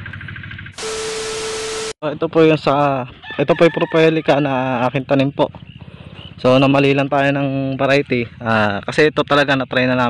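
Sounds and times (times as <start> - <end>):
faint outdoor background: 0.0 - 10.0
loud static hiss with hum: 0.8 - 2.0.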